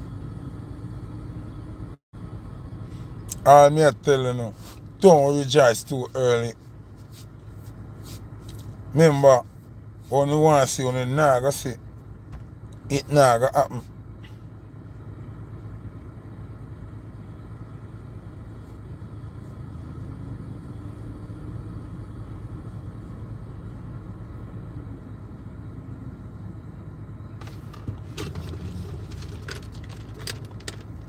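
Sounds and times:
car engine rumble inside cabin: 0.0s - 31.0s
short clicks and rattles: 27.7s - 31.0s.

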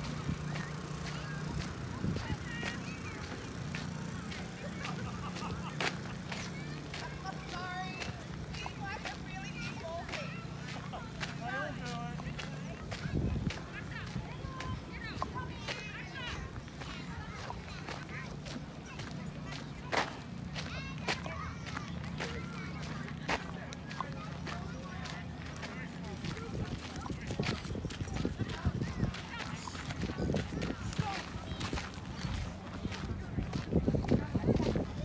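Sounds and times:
footsteps on dirt path: 0.0s - 35.0s
voices in background: 0.0s - 35.0s.

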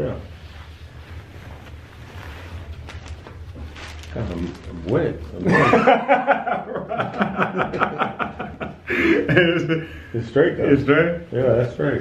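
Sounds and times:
fabric rustling: 0.0s - 8.2s
low steady hum: 0.0s - 12.0s.

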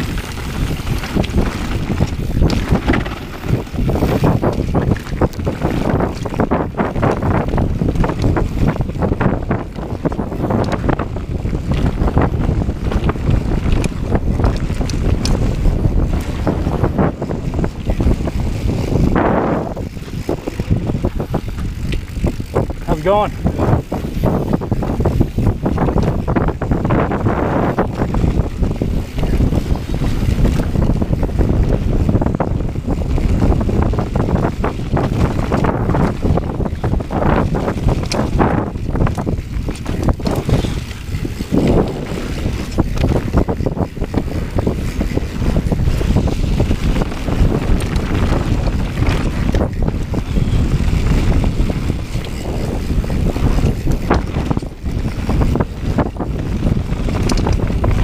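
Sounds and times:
bike knocks and rattles: 0.0s - 58.0s
tyres rumbling on dirt: 0.0s - 58.0s
wind buffeting microphone: 0.0s - 58.0s.

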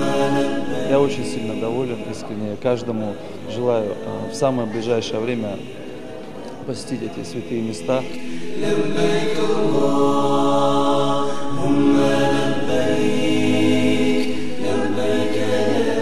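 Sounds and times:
unaccompanied vocal chanting: 0.0s - 16.0s.

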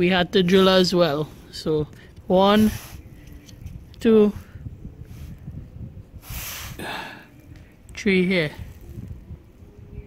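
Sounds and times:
breathy puffs into microphone: 4.4s - 7.4s.

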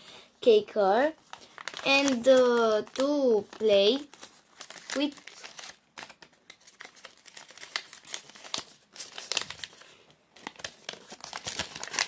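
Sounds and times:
paper crinkling and rustling: 1.2s - 12.0s.

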